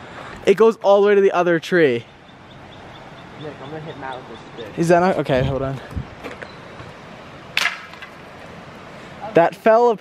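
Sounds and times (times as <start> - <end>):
stick cracking on asphalt: 7.6 - 8.2.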